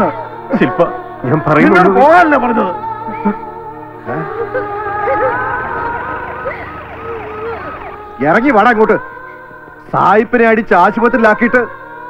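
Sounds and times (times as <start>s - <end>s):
police siren: 4.2s - 8.3s.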